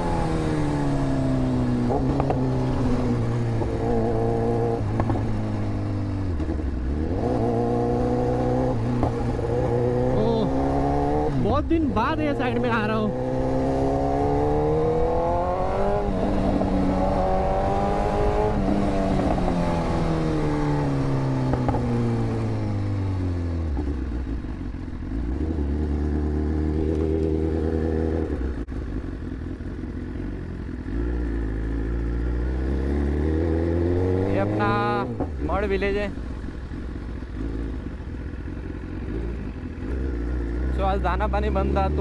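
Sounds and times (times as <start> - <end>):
motorcycle engine revving through gears: 0.0 - 42.0.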